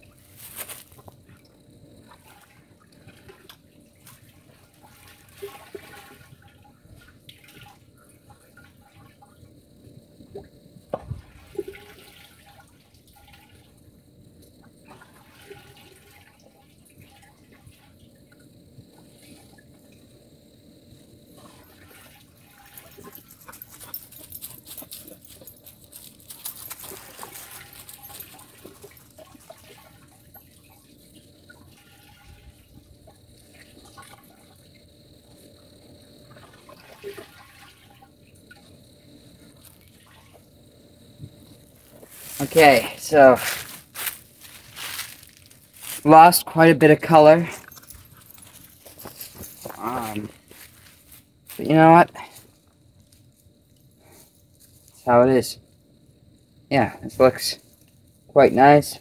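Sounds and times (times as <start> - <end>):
running water: 0.0 - 9.4, 11.0 - 13.9, 14.7 - 20.1, 21.3 - 35.4, 36.1 - 40.6, 41.4 - 52.4
water splashing and sloshing: 0.0 - 20.3, 20.9 - 55.0
water dripping: 0.8 - 10.5, 21.5 - 35.4.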